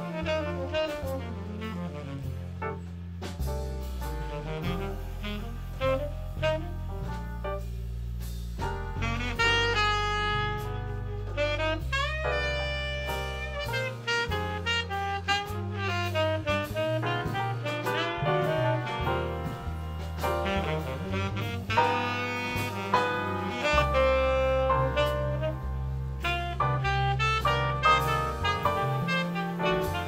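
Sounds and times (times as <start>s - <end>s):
saxophone solo: 0.0s - 2.8s, 4.1s - 7.8s, 8.6s - 30.0s
drum kit: 0.0s - 30.0s
piano: 0.0s - 30.0s
upright bass: 0.0s - 30.0s.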